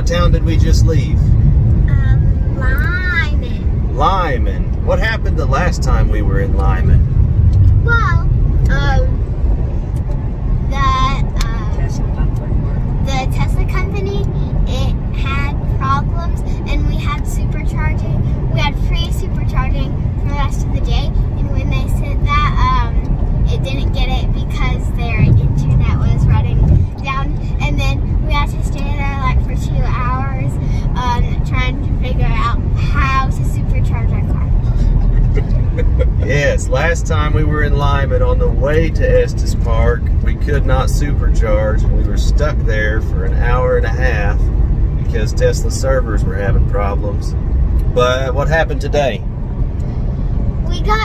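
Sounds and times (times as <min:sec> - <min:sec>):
people talking: 0:00.0 - 0:01.2, 0:01.9 - 0:07.0, 0:07.9 - 0:09.2, 0:10.7 - 0:44.4, 0:45.1 - 0:47.3, 0:47.9 - 0:49.2, 0:50.7 - 0:51.0
road and tyre rumble: 0:00.0 - 0:51.0.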